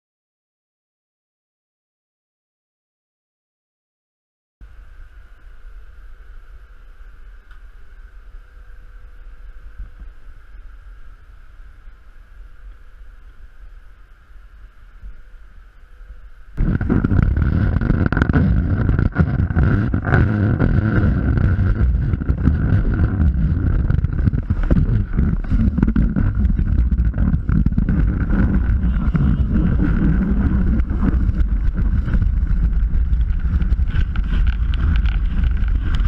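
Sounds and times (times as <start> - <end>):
wind rumbling on microphone: 4.6 - 36.0.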